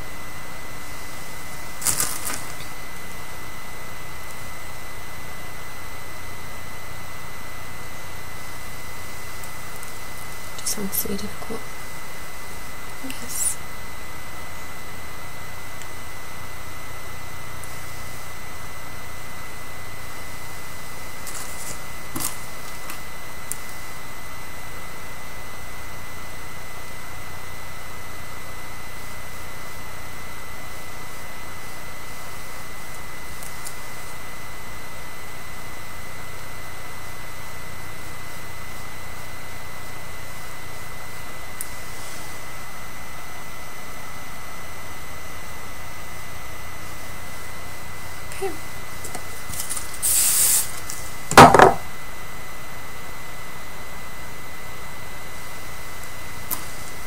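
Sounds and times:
thin high whine: 0.0 - 57.0
recording hiss: 49.8 - 51.1.

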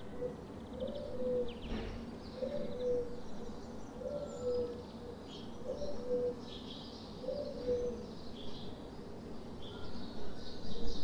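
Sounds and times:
dove cooing: 0.0 - 1.6, 2.4 - 3.2, 4.0 - 4.8, 5.6 - 6.4, 7.2 - 8.0
small birds twittering: 0.0 - 11.0.

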